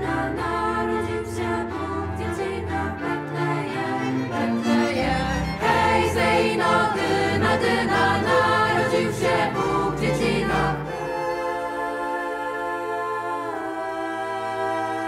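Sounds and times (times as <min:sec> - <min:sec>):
accordion: 0:00.0 - 0:15.0
choir singing a carol: 0:00.0 - 0:15.0
strings: 0:00.0 - 0:15.0.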